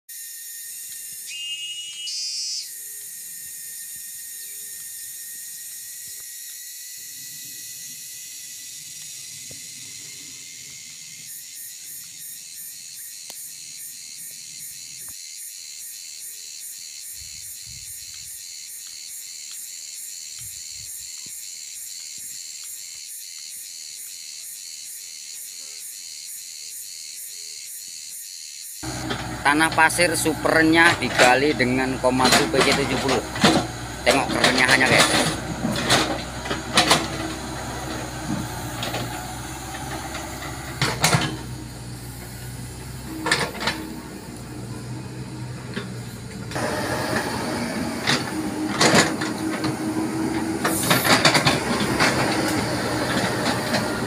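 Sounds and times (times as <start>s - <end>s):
rapid pulsing insect rhythm: 0.1s - 46.6s
high insect call: 0.1s - 54.0s
insect chorus shrill drone: 0.1s - 54.0s.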